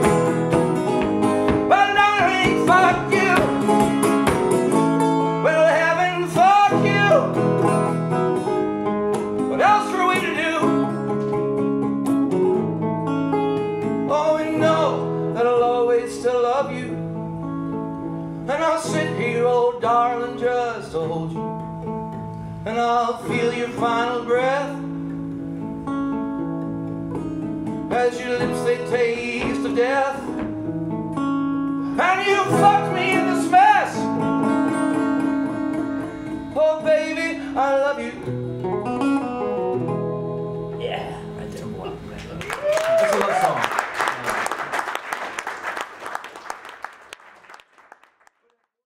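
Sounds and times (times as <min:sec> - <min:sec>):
acoustic guitar chords: 0:00.0 - 0:42.3
person singing: 0:01.5 - 0:03.7
audience applauding: 0:42.2 - 0:48.8.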